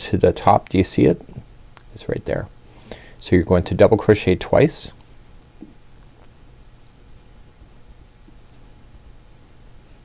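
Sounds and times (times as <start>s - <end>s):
steady low hum: 0.0s - 10.0s
faint high warbling chirp: 6.4s - 6.7s, 8.2s - 10.0s.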